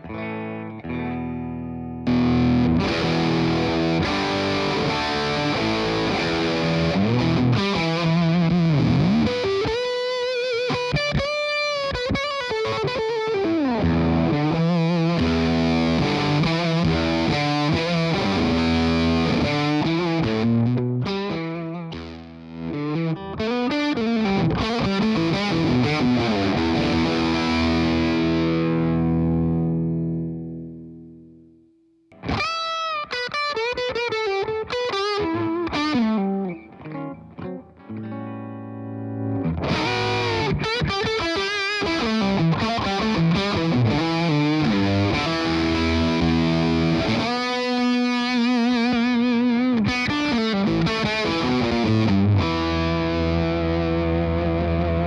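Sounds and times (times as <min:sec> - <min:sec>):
fuzz electric guitar playing: 0:00.0 - 0:55.0.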